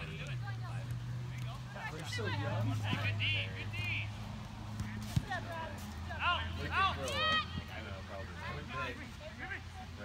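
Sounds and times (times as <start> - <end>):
players shouting: 1.4 - 10.0.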